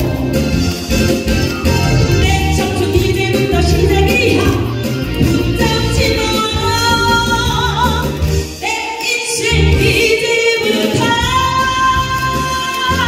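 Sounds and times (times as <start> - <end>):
amplified backing music: 0.0 - 13.0
woman singing into a microphone: 2.2 - 13.0.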